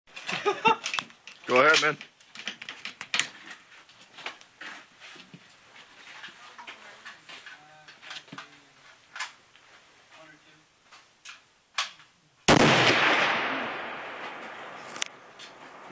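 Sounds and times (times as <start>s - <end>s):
rifle shot with echo: 12.5s - 15.9s.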